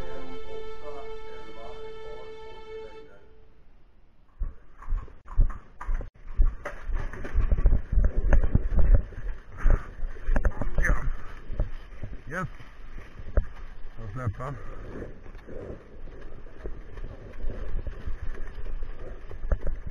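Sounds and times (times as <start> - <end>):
music: 0.0 - 3.4
hooves on gravel: 4.4 - 19.9.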